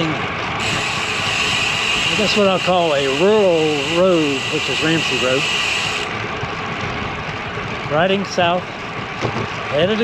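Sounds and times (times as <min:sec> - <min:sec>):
road noise: 0:00.0 - 0:10.0
rushing wind: 0:00.0 - 0:10.0.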